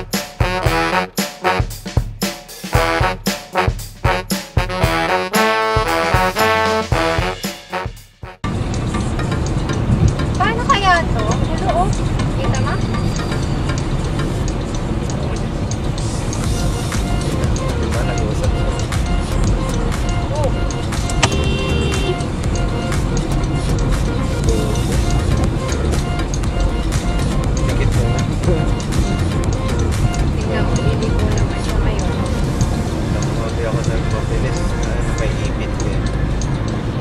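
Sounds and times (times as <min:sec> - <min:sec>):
music: 0:00.0 - 0:37.0
car road and engine rumble: 0:08.3 - 0:37.0.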